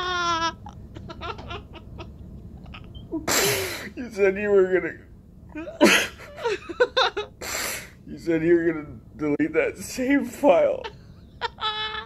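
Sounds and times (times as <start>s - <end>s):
man sniffling: 3.3s - 4.0s
man sobbing: 5.5s - 7.4s.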